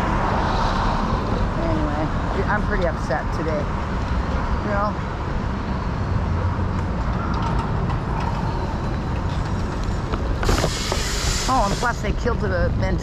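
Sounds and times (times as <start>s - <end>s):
low rumble of passing cars: 0.0s - 13.0s
burst of hiss: 10.4s - 12.0s.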